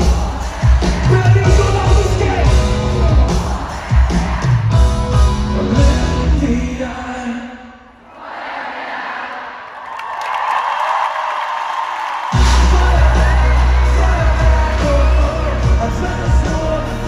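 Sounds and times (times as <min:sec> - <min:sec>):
live pop band: 0:00.0 - 0:07.7, 0:12.3 - 0:17.0
crowd cheering and singing: 0:00.0 - 0:17.0.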